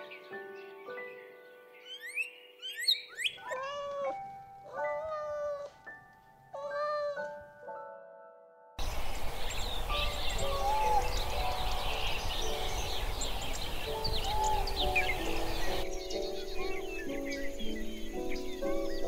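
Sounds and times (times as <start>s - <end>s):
bird chirps: 0.0s - 5.7s, 8.8s - 19.0s
soft background music: 0.0s - 19.0s
kitten meowing: 6.6s - 7.3s, 10.4s - 11.1s
outdoor hiss: 8.8s - 15.9s.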